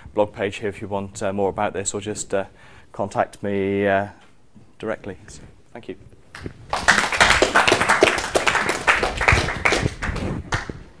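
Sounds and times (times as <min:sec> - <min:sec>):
audience applauding: 0:06.4 - 0:10.8.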